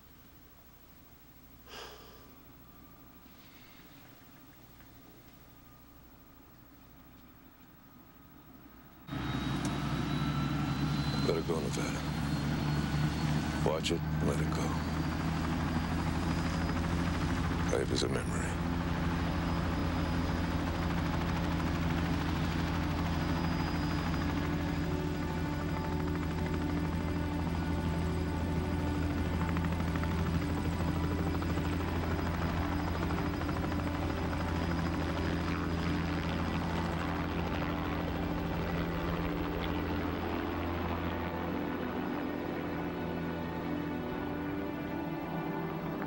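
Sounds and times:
helicopter rotor and engine hum: 8.9 - 46.0.

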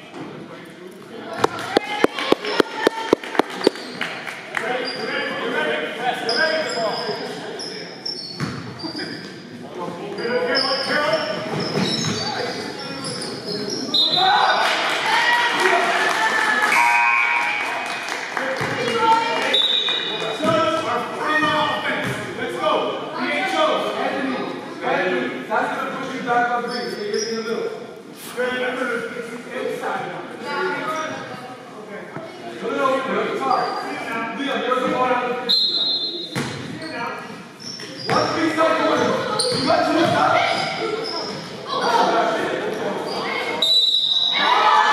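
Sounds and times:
voices echoing in a hall: 0.0 - 44.9
ball bouncing on wooden floor: 1.4 - 3.9
sneaker squeaks: 1.8 - 4.2, 4.8 - 5.2, 6.2 - 9.5, 10.2 - 14.3, 26.7 - 27.4, 33.5 - 34.0, 35.5 - 41.8, 43.0 - 44.4.

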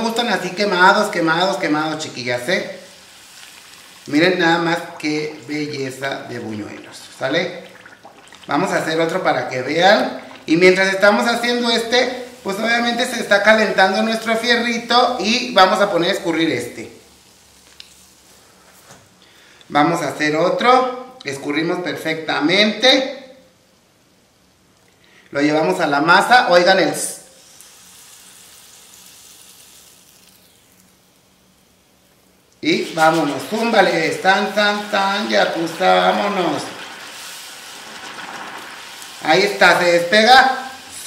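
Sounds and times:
oil sizzling in a pan: 0.0 - 18.6, 27.3 - 41.0.

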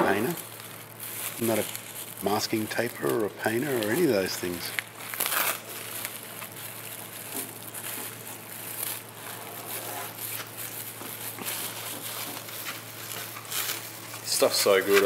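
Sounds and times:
plastic film crinkling: 0.0 - 15.0.

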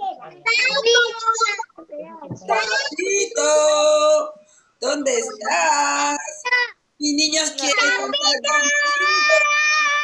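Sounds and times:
children calling out in sing-song: 7.8 - 10.0.

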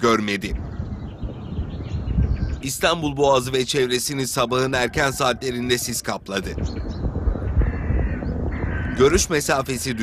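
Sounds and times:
bird calling: 0.0 - 10.0.

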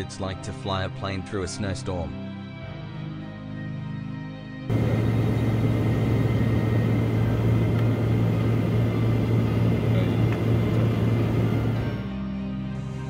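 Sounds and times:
aircraft cockpit drone: 4.7 - 12.2.

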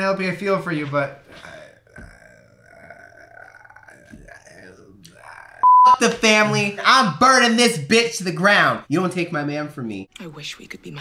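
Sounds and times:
faint vocal groan: 1.2 - 5.8
censor bleep: 5.6 - 6.0.

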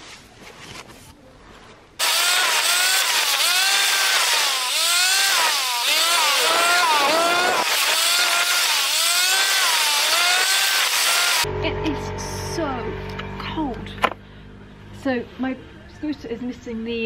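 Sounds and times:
scooter engine revving: 2.0 - 13.8.

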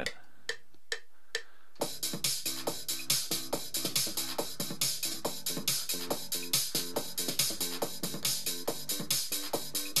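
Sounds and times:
electronic drum pattern: 0.0 - 1.1, 1.8 - 10.0.

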